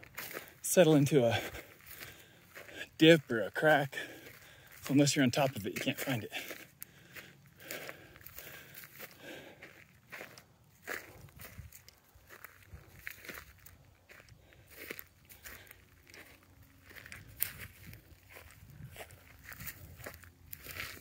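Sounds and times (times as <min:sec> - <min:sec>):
footsteps crunching on dry grass: 0:00.0 - 0:21.0.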